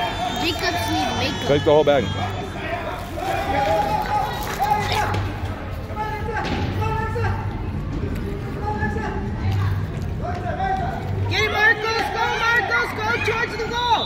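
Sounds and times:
people calling and shouting: 0.0s - 14.0s.

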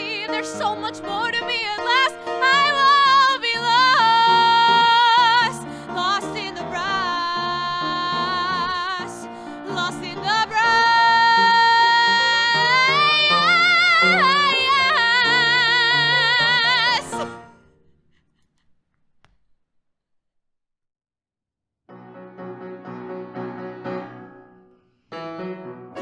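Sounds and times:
woman singing with vibrato: 0.0s - 17.4s
piano accompaniment: 0.0s - 18.1s, 21.9s - 26.0s.

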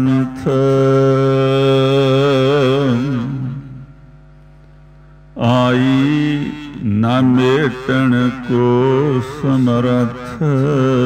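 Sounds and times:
man chanting a hymn: 0.0s - 3.8s, 5.4s - 11.0s
steady held drone: 0.0s - 11.0s.

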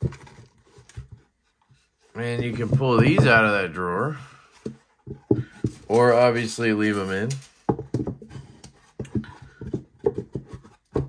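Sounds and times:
display case knocks and scrapes: 2.2s - 3.6s, 7.6s - 11.0s.

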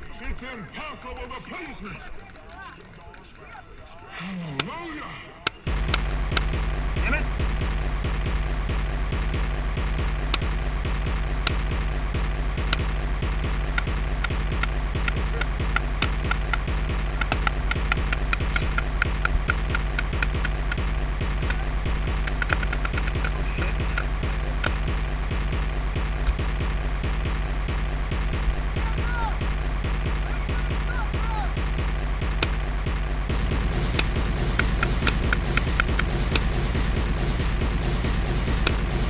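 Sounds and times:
low hum: 5.6s - 39.0s
music: 5.7s - 39.0s
paintball markers popping: 12.6s - 26.7s, 33.7s - 36.7s.

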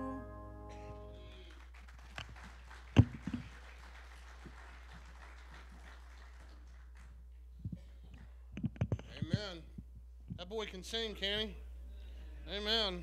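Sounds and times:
microphone handling knocks: 8.6s - 9.5s.

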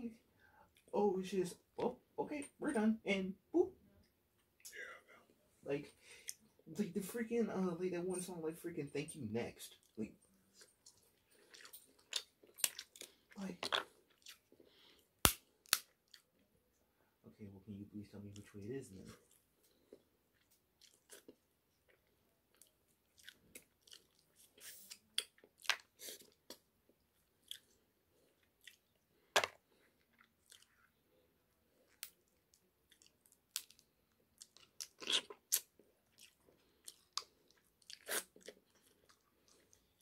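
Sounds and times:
chewing: 9.8s - 15.1s, 15.8s - 16.5s, 19.1s - 40.0s.

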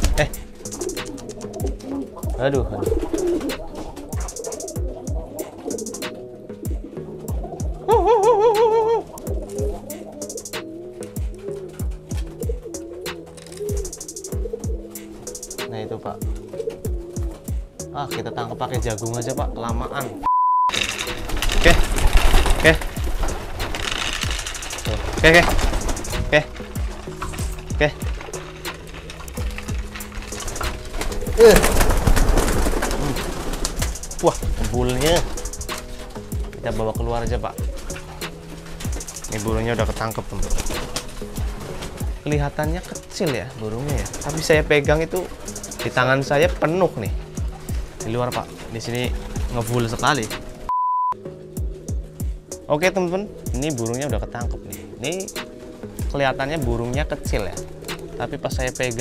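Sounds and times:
pigeons cooing: 0.0s - 50.7s, 51.3s - 59.0s
wings flapping: 0.0s - 50.7s, 51.7s - 59.0s.

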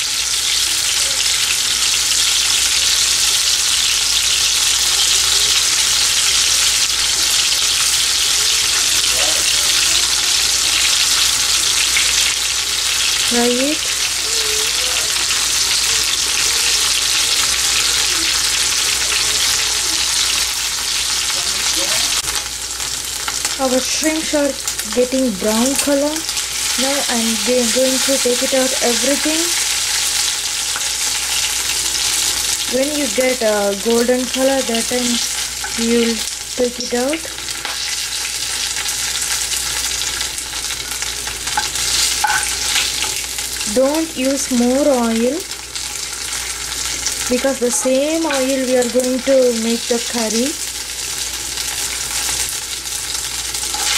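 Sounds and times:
shrimp sizzling in hot oil: 0.0s - 53.9s.

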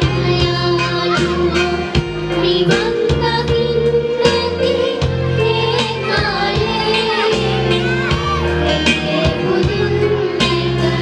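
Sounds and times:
children's choir singing: 0.0s - 11.0s
instrumental backing with beat: 0.0s - 11.0s.

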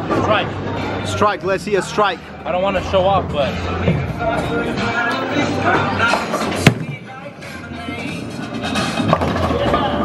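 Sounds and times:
background music: 0.0s - 10.0s
bowling ball thud on lane: 6.6s - 7.1s.

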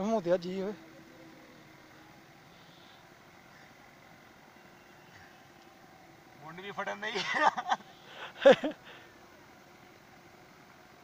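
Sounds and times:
faint steady background hiss: 0.0s - 11.0s.

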